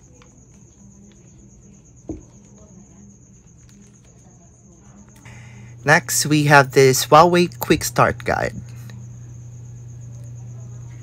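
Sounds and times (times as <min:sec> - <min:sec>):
cricket trilling: 0:00.0 - 0:11.0.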